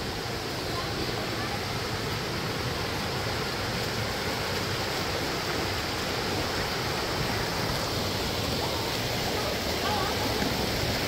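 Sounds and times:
stream pouring over rocks: 0.0s - 11.0s.

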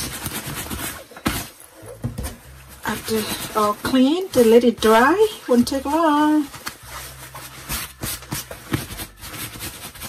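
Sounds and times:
jacket fabric rustling and scraping: 0.0s - 10.0s.

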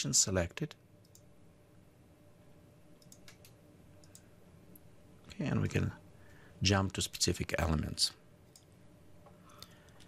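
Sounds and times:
computer mouse clicks: 1.0s - 1.3s, 3.0s - 4.3s, 8.5s - 8.7s.

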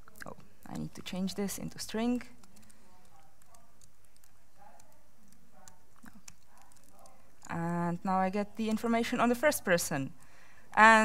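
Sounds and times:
laptop keyboard clicks: 1.5s - 7.2s.

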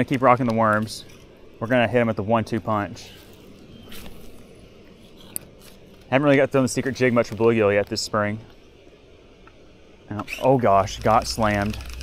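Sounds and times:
fishing line noise: 10.2s - 12.0s.

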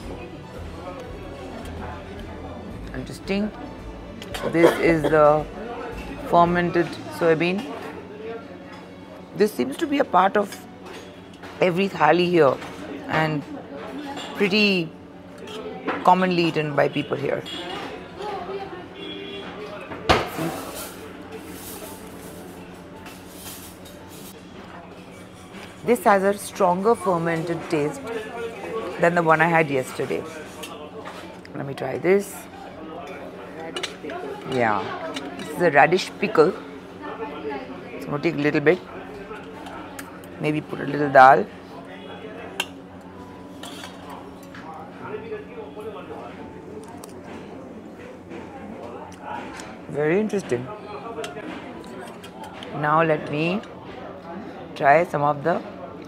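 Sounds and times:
restaurant background music: 0.0s - 56.0s
faint voices: 12.8s - 56.0s
cutlery clinking on metal plate: 43.5s - 44.6s.

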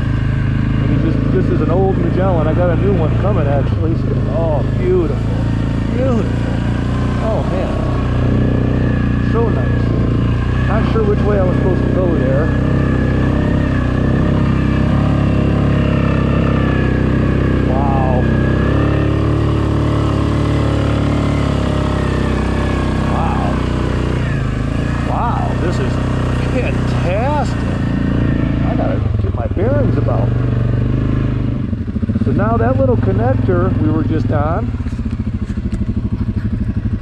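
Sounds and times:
quad engine running: 0.0s - 37.0s.

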